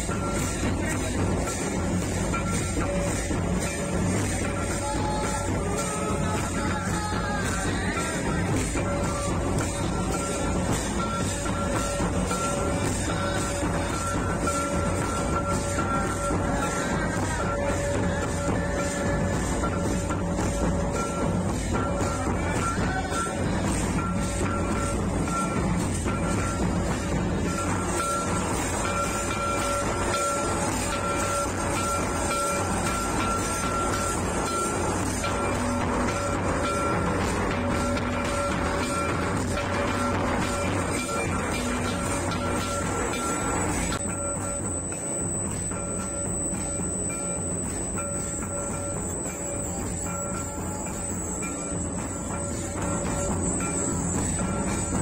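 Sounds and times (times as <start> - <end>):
drums playing dense beat: 0.0 - 55.0
high melodic held notes: 0.0 - 55.0.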